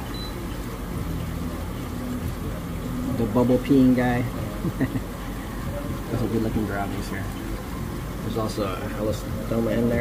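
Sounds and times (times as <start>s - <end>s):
aquarium air pumps humming: 0.0s - 10.0s.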